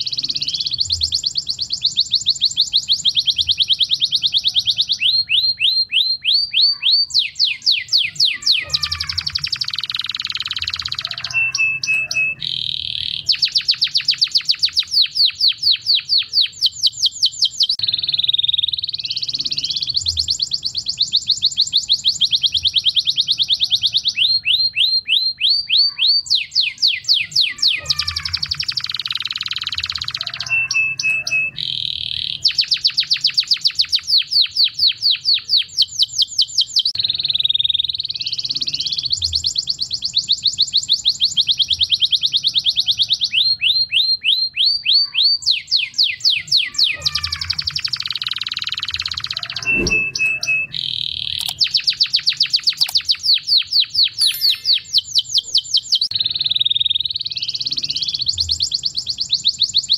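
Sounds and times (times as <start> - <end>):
canary singing trills: 0.0 - 59.9.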